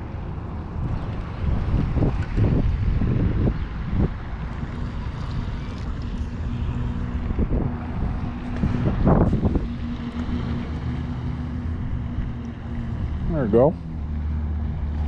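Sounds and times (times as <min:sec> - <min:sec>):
steady low hum: 0:00.0 - 0:15.0
wind rumbling on microphone: 0:00.0 - 0:15.0.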